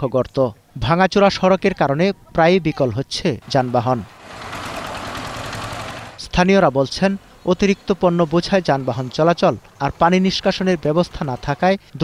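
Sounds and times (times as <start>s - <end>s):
diesel engine chugging: 3.4s - 6.2s.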